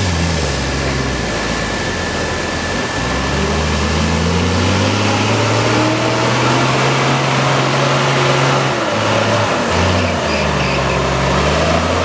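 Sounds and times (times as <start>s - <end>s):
truck engine under load: 0.0s - 12.0s.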